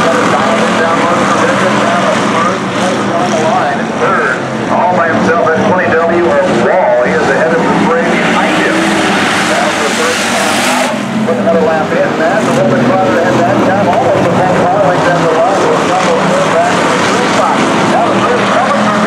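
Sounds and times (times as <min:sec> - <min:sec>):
race car engines revving: 0:00.0 - 0:19.0
rushing noise: 0:00.0 - 0:19.0.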